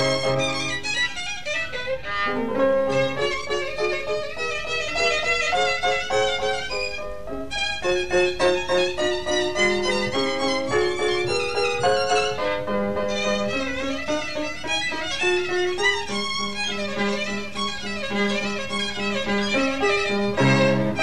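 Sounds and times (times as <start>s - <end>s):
piano accompaniment: 0.0s - 21.0s
solo violin: 0.0s - 21.0s.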